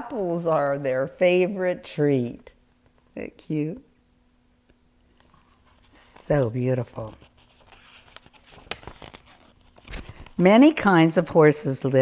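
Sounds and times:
book pages rustling and turning: 5.1 - 10.8.

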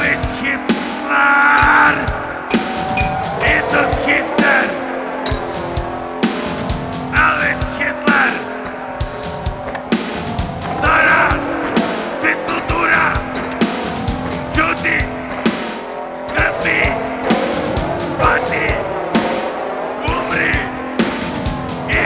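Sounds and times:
drum machine beat: 0.0 - 22.0
harsh screeching bursts: 1.0 - 22.0
bass drone: 1.6 - 22.0.

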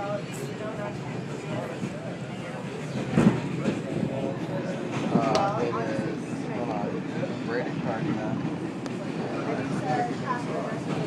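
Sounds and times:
faint passengers' voices: 0.0 - 11.0
subway train rumble: 0.0 - 11.0.

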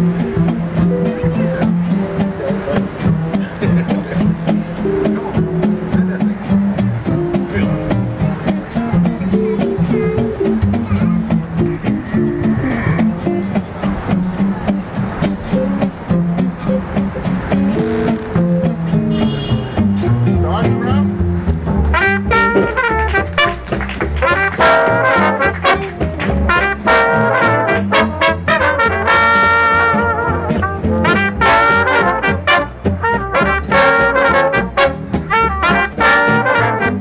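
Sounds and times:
acoustic guitar rhythm: 0.0 - 37.0
plucked string bass solo: 0.0 - 37.0
trumpets and trombones in harmony: 19.1 - 19.9, 21.9 - 37.0.

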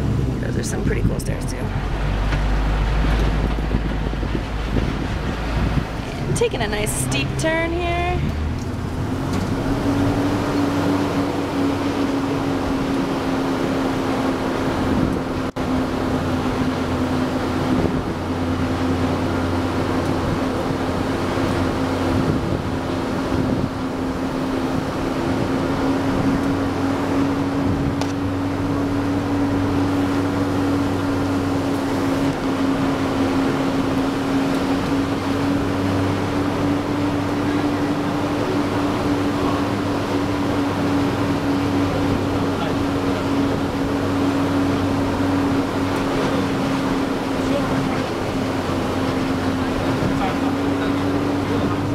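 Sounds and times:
engine drone: 0.0 - 51.9
road and wind noise: 0.0 - 51.9.

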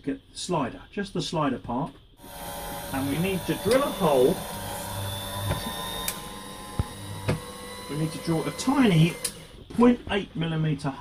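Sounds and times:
drill press motor humming: 2.2 - 9.8
sharp clicks: 9.1 - 9.5.

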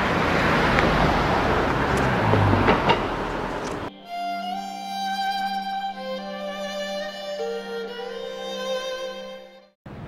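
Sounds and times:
passing cars rushing: 0.0 - 3.9.

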